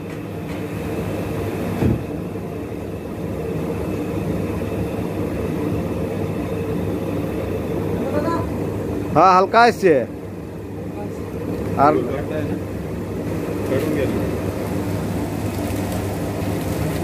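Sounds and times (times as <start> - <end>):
machine drum humming: 0.0 - 17.0
rustling clatter of grain: 13.6 - 17.0.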